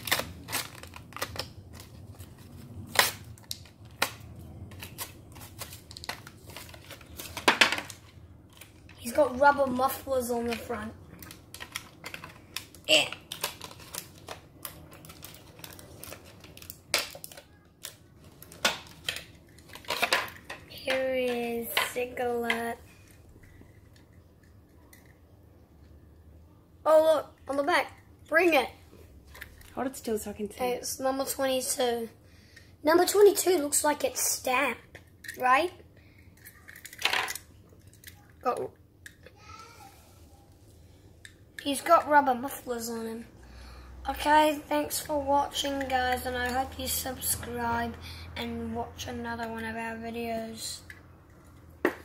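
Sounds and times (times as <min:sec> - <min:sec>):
plastic packaging crackling: 0:00.0 - 0:21.0.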